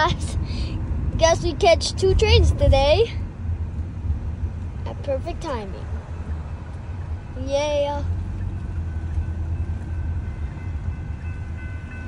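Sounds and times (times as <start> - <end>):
low rumble inside car: 0.0 - 12.0
railroad crossing warning bell: 8.0 - 12.0.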